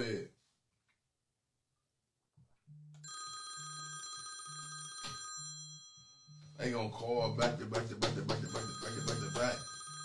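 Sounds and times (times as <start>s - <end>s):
phone ringtone high tones: 3.0s - 6.6s, 8.4s - 10.0s.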